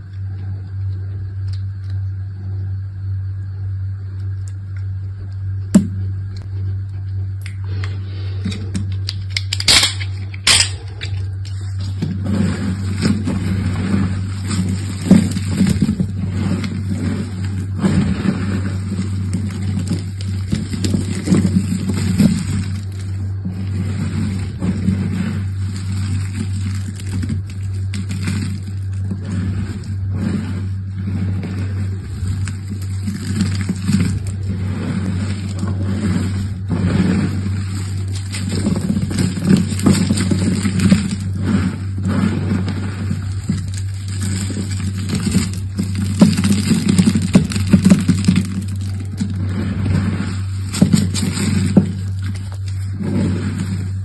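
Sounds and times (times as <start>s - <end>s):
low hum: 0.0s - 54.0s
soap shavings crunching: 7.7s - 54.0s.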